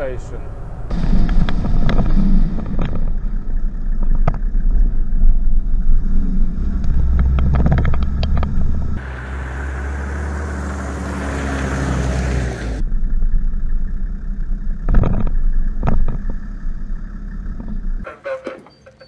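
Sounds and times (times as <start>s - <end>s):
engine low rumble: 0.0s - 18.0s
vehicle driving past on paving: 5.6s - 13.2s.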